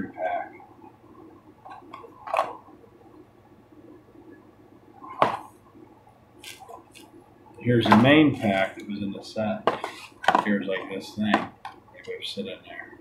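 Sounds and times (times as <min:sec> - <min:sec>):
cardboard boxes rustling and scraping: 0:09.8 - 0:10.2.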